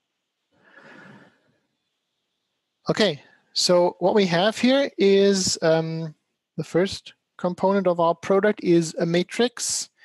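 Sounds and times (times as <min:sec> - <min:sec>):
faint breathy exhale: 0:00.6 - 0:01.4.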